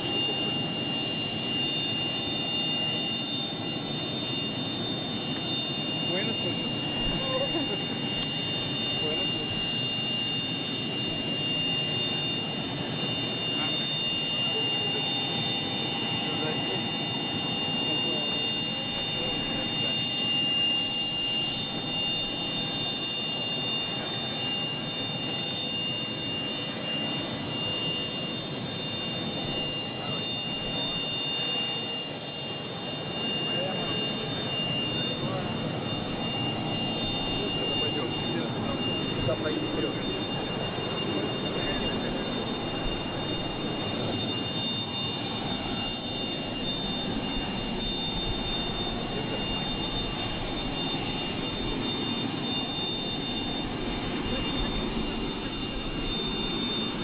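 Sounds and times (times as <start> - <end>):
jet turbines whining: 0.0 - 57.0
people talking: 6.0 - 8.2, 8.8 - 9.8, 12.8 - 15.4, 16.1 - 17.0, 17.7 - 20.1, 29.9 - 30.4, 33.4 - 35.9, 36.6 - 44.3, 48.8 - 49.9, 54.2 - 55.9.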